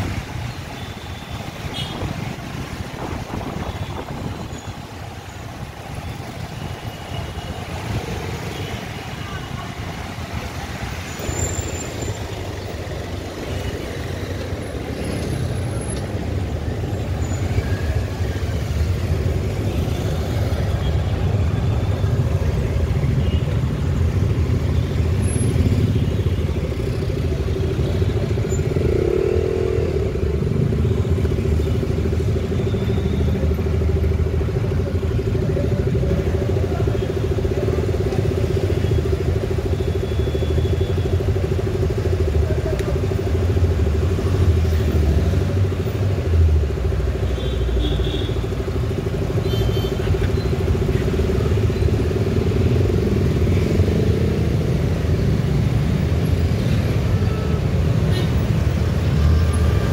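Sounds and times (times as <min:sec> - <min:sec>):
motorcycle and car engines: 0:00.0 - 0:59.9.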